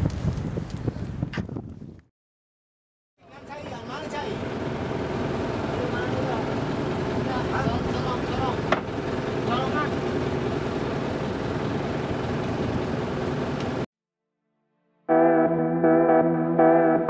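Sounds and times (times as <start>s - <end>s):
motor boat engine running: 3.5s - 13.8s.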